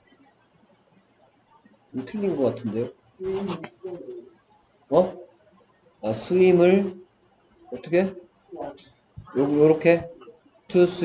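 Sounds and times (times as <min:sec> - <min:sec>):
man murmuring: 0:02.0 - 0:04.2, 0:04.9 - 0:05.2, 0:06.1 - 0:07.0, 0:07.8 - 0:08.2, 0:09.3 - 0:11.0.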